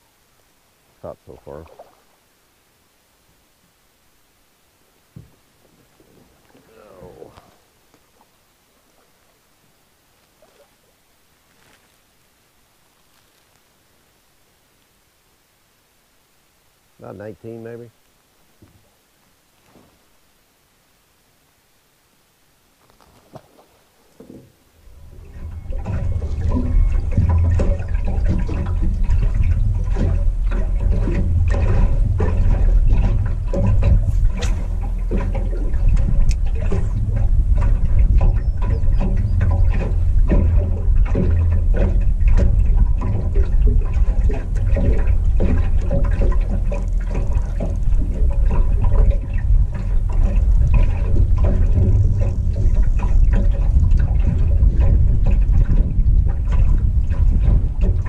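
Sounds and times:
water lapping against metal hull: 0:00.9 - 0:02.4, 0:04.9 - 0:11.8, 0:22.8 - 0:58.0
wind rumble on microphone: 0:24.2 - 0:58.0.

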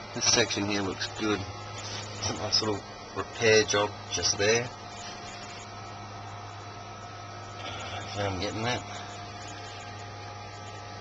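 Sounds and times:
background hum with hiss: 0:00.0 - 0:11.0
faint high whine: 0:00.0 - 0:11.0.

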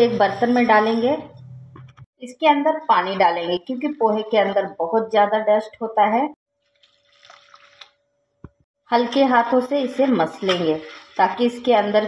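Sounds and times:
water trickling into a steel bowl: 0:06.7 - 0:08.0.

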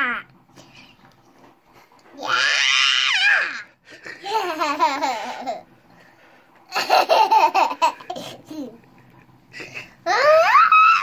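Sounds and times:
boy squealing playfully: 0:10.1 - 0:11.0.

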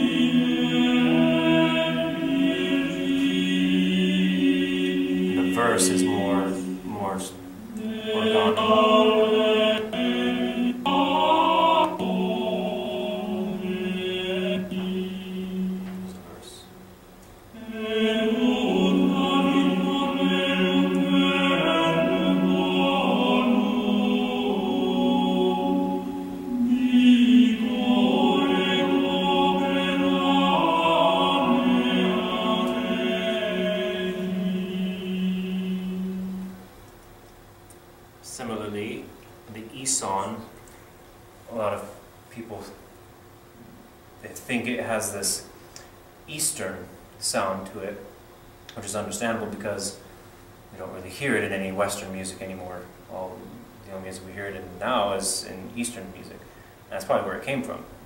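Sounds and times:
male choir chanting: 0:00.0 - 0:16.7, 0:17.5 - 0:36.6
steady low drone voice: 0:00.0 - 0:16.8, 0:17.5 - 0:36.6.

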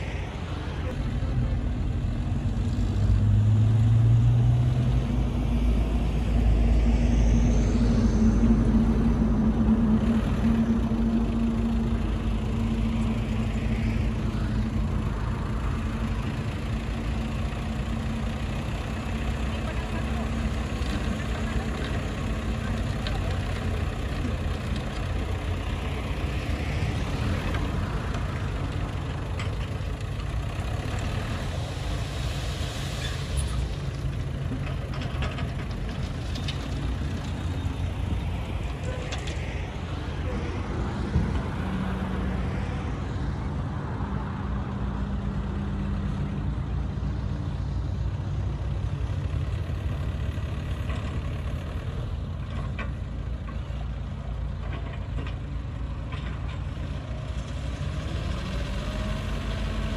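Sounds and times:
diesel machinery engine running: 0:00.0 - 0:59.9.

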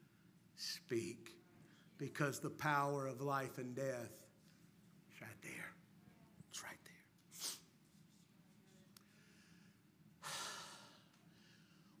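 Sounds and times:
man breathing in noisily: 0:09.2 - 0:12.0.

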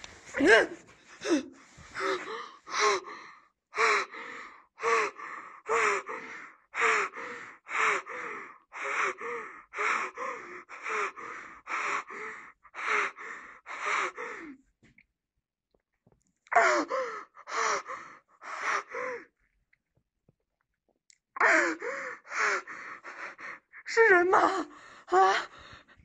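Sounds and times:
person breathing heavily gasping: 0:00.4 - 0:14.6, 0:21.4 - 0:23.8.

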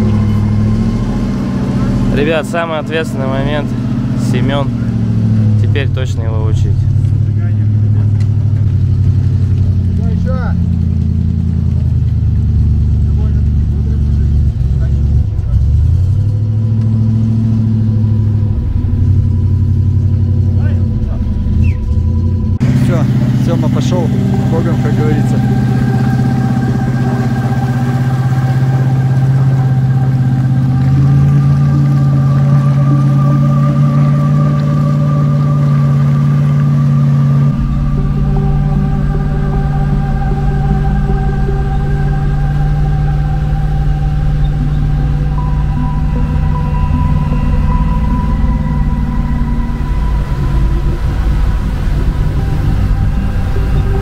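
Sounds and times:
truck engine running: 0:00.0 - 0:54.0.

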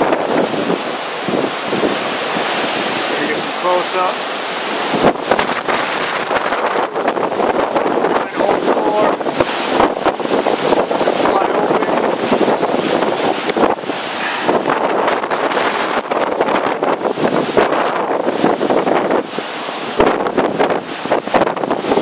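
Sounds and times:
gusting storm wind on microphone: 0:00.0 - 0:22.0.

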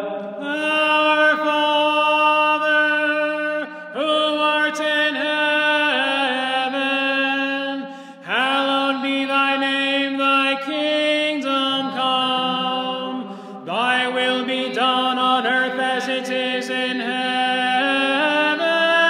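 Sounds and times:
voices chanting long notes: 0:05.2 - 0:18.8
singers breathing: 0:07.8 - 0:08.3, 0:13.2 - 0:13.7.

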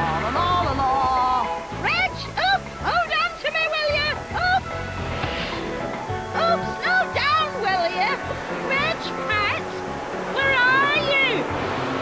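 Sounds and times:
cartoon background music: 0:00.2 - 0:11.9
wind hiss: 0:03.1 - 0:12.0.

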